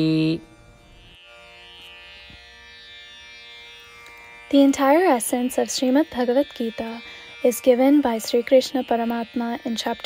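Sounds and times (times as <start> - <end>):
held string tones music: 0.0 - 10.0.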